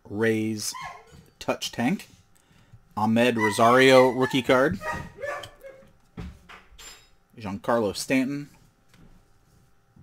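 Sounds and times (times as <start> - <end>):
dog barking: 3.4 - 5.9.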